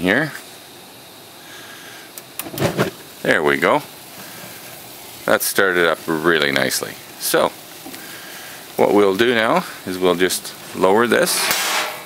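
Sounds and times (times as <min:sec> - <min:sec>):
faint hiss of gas: 0:00.0 - 0:12.0
sharp igniter clicks: 0:02.1 - 0:03.3, 0:11.2 - 0:12.0.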